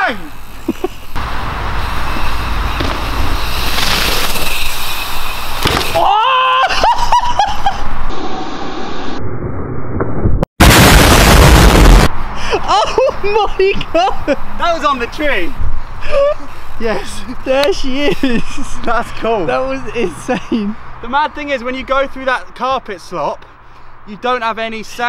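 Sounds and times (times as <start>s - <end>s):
bike tyre noise on dirt: 0.0s - 6.2s
loud rush of noise: 8.0s - 12.6s.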